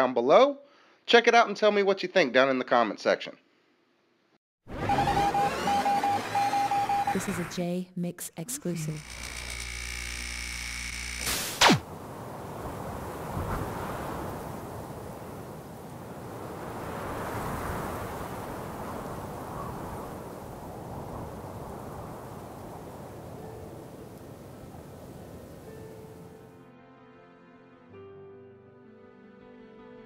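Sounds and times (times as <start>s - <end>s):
steady electric hum: 8.8s - 11.6s
sharp hit with falling pitch: 11.3s - 11.8s.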